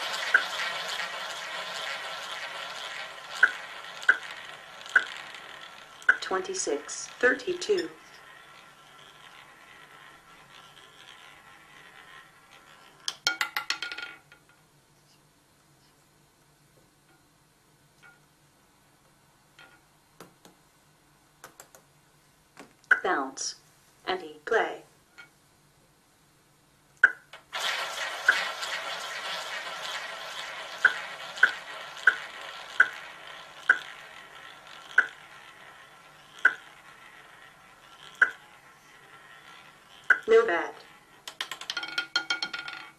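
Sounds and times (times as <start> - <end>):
roulette ball clattering: 0.0 - 14.6, 19.6 - 20.6, 21.4 - 21.9, 27.0 - 42.9
roulette ball rolling: 0.0 - 14.7, 19.5 - 20.6, 21.4 - 21.9, 27.0 - 42.9.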